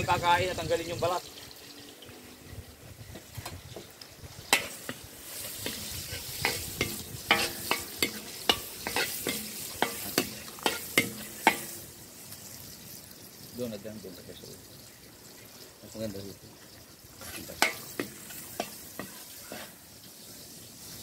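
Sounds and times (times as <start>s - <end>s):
rice sizzling in a wok: 0.0s - 21.0s
spatula scraping metal wok: 2.3s - 12.3s, 17.1s - 19.9s.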